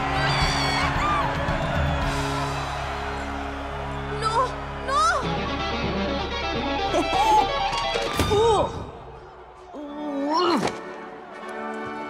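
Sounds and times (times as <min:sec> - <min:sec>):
electric guitar playing: 0:05.2 - 0:08.1
voice crying oh: 0:06.9 - 0:07.6.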